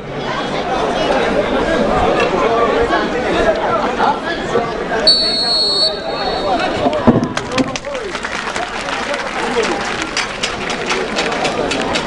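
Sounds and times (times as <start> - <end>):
crowd chatter: 0.0 - 12.0
high whistle-like tone: 5.1 - 6.7.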